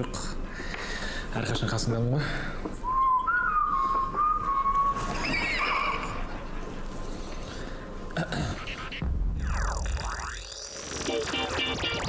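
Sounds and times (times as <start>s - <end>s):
person whistling: 2.8s - 5.1s.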